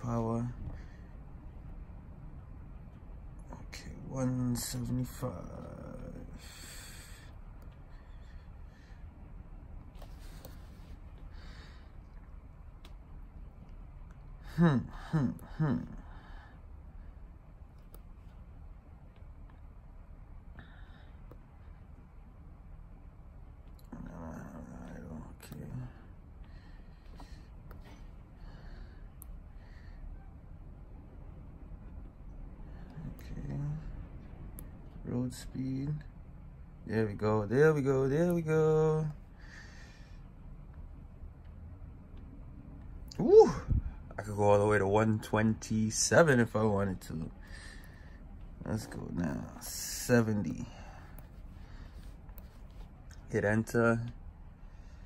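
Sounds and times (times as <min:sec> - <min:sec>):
faint low rumble: 0:00.0 - 0:55.0
soft breath: 0:00.6 - 0:02.2, 0:05.6 - 0:18.5, 0:20.4 - 0:22.4, 0:25.7 - 0:35.0, 0:39.2 - 0:41.1, 0:47.3 - 0:53.3, 0:54.2 - 0:55.0
light clicks: 0:12.1 - 0:14.3.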